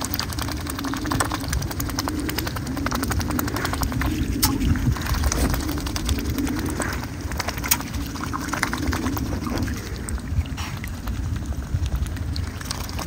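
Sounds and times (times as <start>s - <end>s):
low wavering hum: 0.0s - 13.0s
swans dabbling bills in water: 0.0s - 13.0s.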